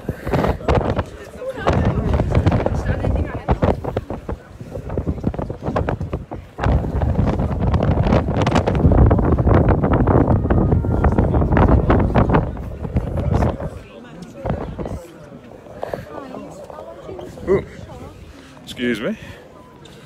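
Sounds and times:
wind buffeting microphone: 0.0 - 18.4
people's voices in background: 0.0 - 20.0.

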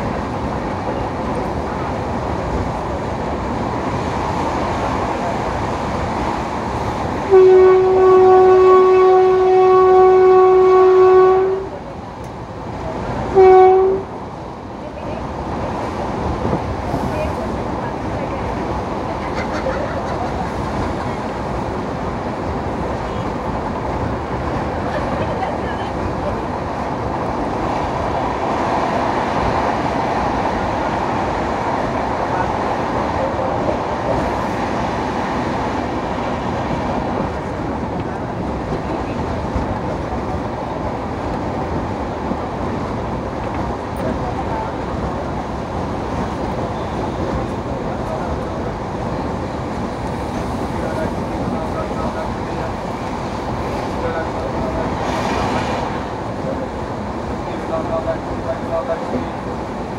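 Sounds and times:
rush of wind: 0.0 - 9.5, 10.5 - 59.9
train wheels rumbling on rail: 0.0 - 59.9.

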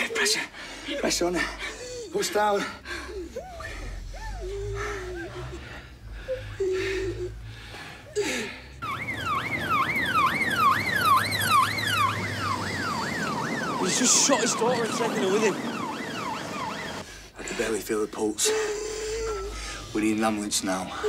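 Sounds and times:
low steady hum: 0.0 - 10.7, 17.0 - 21.0
emergency vehicle siren wailing: 8.8 - 17.1.

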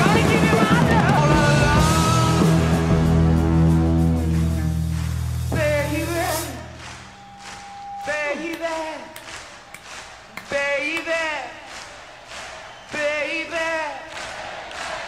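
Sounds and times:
man singing unaccompanied: 0.0 - 2.8, 5.5 - 6.8.

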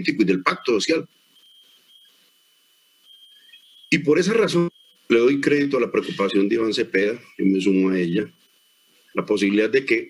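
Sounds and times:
faint high-pitched tone: 0.4 - 2.4, 3.0 - 8.2.

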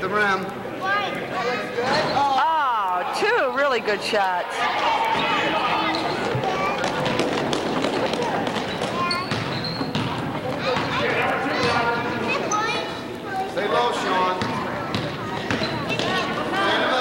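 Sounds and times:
spectators and players voices: 0.0 - 17.0
basketball bouncing on court: 5.9 - 12.1, 14.3 - 16.2.

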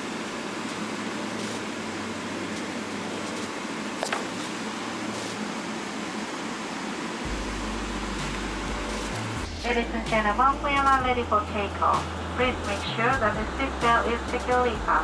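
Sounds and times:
cabin ventilation air rush: 0.0 - 14.7
engine hum: 0.0 - 15.0
deep rumble: 7.3 - 15.0.

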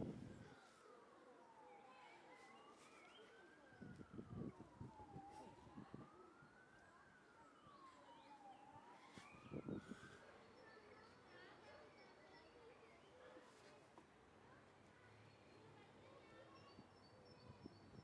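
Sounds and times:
faint siren wailing: 0.0 - 11.3.

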